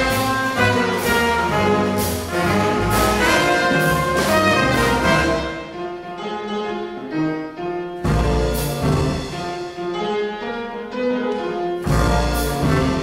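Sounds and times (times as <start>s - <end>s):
drums and cymbals: 0.0s - 5.5s, 8.0s - 10.0s, 11.8s - 13.0s
trombone: 0.0s - 5.8s, 8.0s - 9.9s, 11.8s - 13.0s
trumpet: 0.0s - 6.3s, 8.0s - 10.0s, 11.4s - 13.0s
piano: 0.0s - 13.0s
upright bass: 8.0s - 9.4s, 11.8s - 13.0s.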